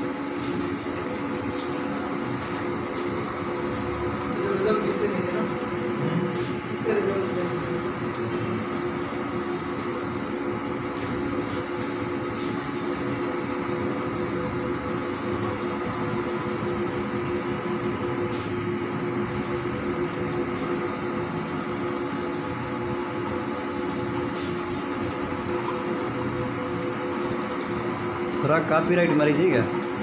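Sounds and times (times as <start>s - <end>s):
printer motors and fans humming: 0.0s - 30.0s.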